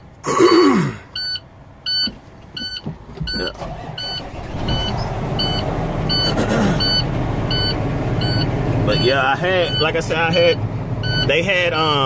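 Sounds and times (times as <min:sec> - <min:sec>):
diesel truck engine idling: 0:00.0 - 0:12.0
electronic beeping: 0:01.2 - 0:09.9.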